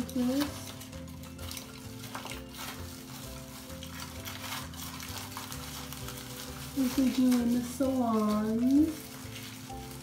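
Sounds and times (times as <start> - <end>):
aluminium foil crinkling: 0.0 - 10.0
plastic gloves rustling: 0.0 - 10.0.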